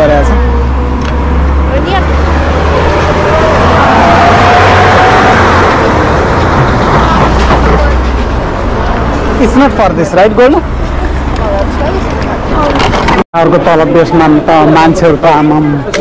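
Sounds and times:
vehicle passing close by: 0.0 - 12.7
low traffic rumble: 0.0 - 16.0.

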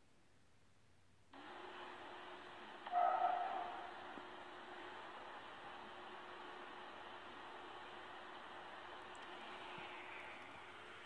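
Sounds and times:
steady hiss: 1.3 - 11.0.

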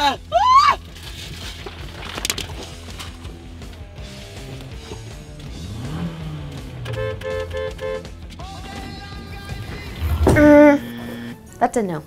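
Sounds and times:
background music: 0.0 - 12.0
two-tone car horn honking: 6.8 - 8.2, 10.0 - 11.4.

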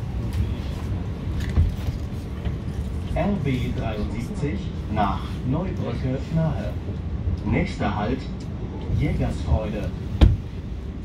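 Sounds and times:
train interior rumble: 0.0 - 11.0.

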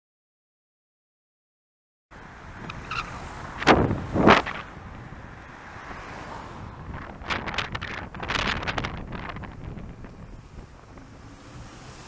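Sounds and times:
wind buffeting microphone: 2.4 - 12.0.

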